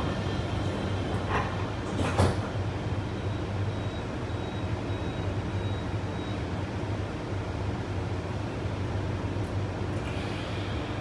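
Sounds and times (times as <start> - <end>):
monorail car hum: 0.0 - 11.0.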